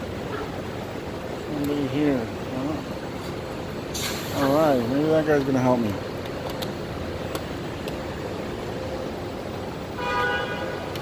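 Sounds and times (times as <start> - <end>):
steady background hum: 0.0 - 11.0
man speaking: 1.4 - 3.0, 4.3 - 6.1
air brakes hissing: 3.9 - 4.6.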